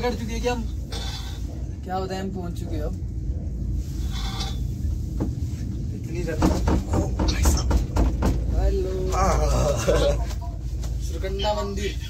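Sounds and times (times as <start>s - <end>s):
gondola cabin rumbling: 0.0s - 12.0s.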